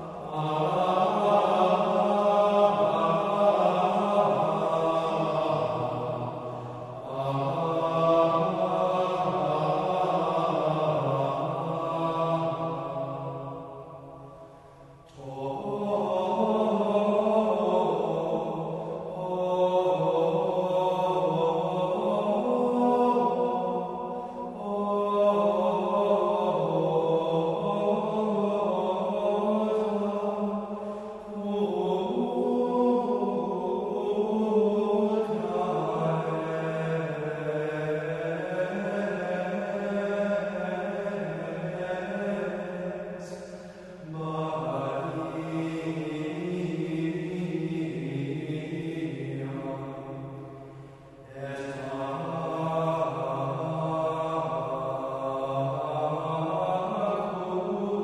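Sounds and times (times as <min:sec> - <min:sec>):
men chanting in unison: 0:00.0 - 0:58.0.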